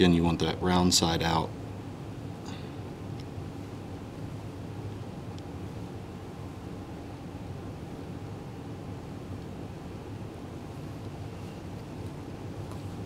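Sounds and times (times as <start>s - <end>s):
low room rumble: 0.0s - 13.0s.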